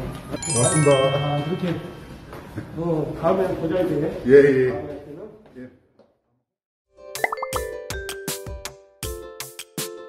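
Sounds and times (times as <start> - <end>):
plucked logo jingle: 0.4 - 2.1.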